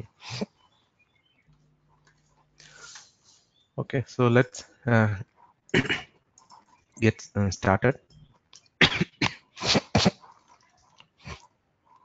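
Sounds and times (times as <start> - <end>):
person coughing: 5.7 - 6.1, 8.8 - 10.2.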